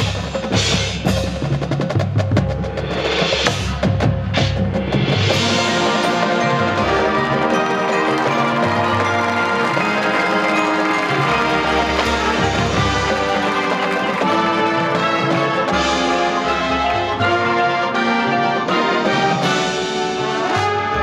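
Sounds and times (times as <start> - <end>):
marching band playing: 0.0 - 21.0
percussion strikes and rolls: 0.0 - 21.0
wind instruments sustained chords: 5.4 - 21.0.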